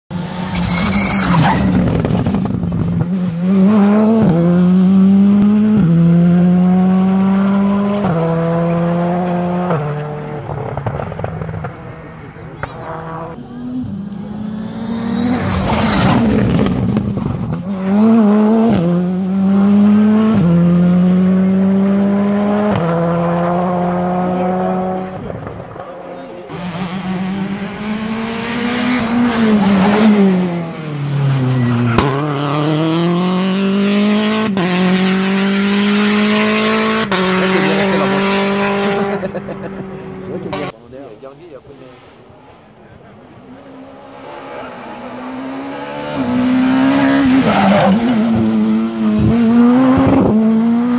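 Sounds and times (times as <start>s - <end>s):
rally car engines at full throttle: 0.1s - 50.9s
rally car passing: 0.1s - 50.9s.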